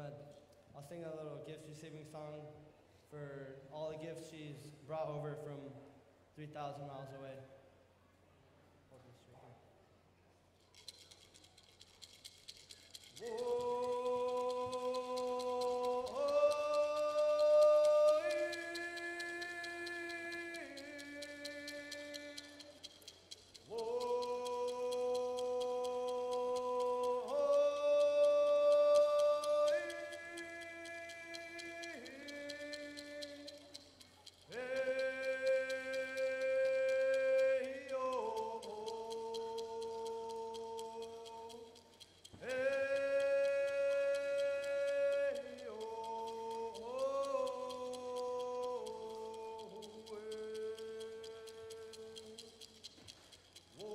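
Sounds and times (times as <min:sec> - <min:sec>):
young man singing solo: 0:13.2 - 0:22.7.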